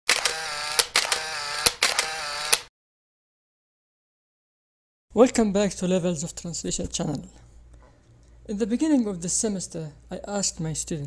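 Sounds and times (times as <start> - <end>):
mechanical click and whirr: 0.1 - 2.7.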